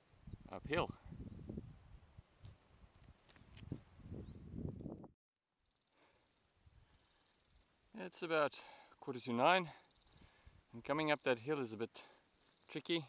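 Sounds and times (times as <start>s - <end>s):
pulsing insect trill: 0.0s - 4.7s, 5.5s - 13.0s
rustling against shrubs: 0.1s - 4.2s.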